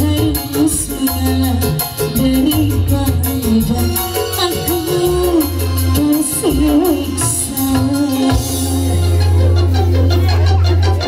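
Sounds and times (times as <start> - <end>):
live band music through speakers: 0.0 - 11.0.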